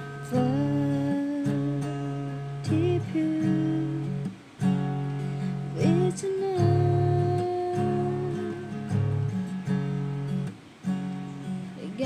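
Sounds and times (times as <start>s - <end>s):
strummed acoustic guitar: 0.0s - 12.0s
woman singing held notes: 11.8s - 12.0s.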